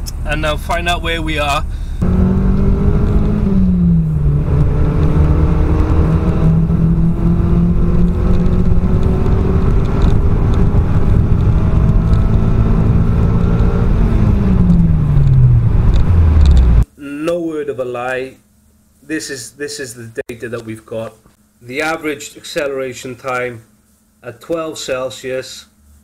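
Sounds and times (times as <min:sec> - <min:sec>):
car engine accelerating: 0:02.0 - 0:16.8.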